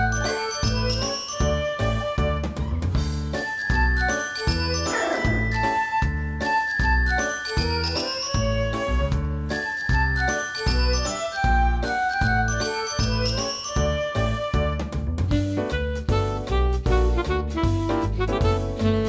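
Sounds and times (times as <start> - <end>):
bell-like tinkling melody: 0.0 - 2.4, 3.4 - 14.7
upbeat instrumental music: 0.0 - 19.0.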